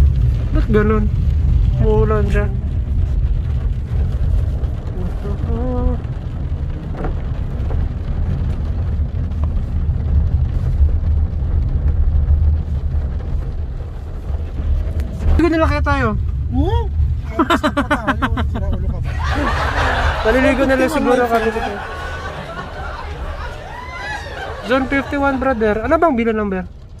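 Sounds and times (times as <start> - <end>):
car interior road rumble: 0.0 - 27.0
person talking: 20.2 - 21.9.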